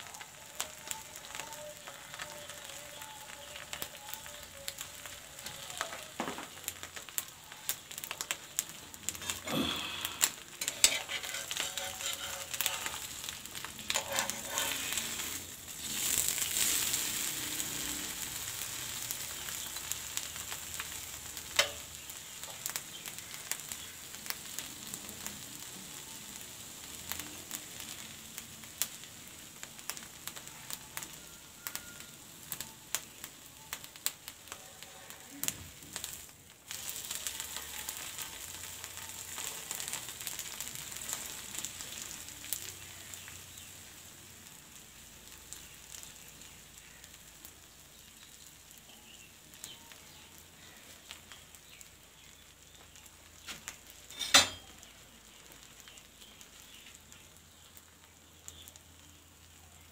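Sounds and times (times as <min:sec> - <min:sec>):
egg sizzling in oil: 0:00.0 - 0:59.9.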